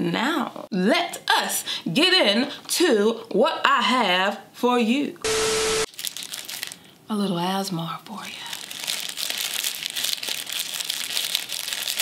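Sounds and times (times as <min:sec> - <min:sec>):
static hiss with steady tone: 0:05.2 - 0:05.9
packaging crinkling and rustling: 0:05.9 - 0:06.9, 0:08.4 - 0:12.0.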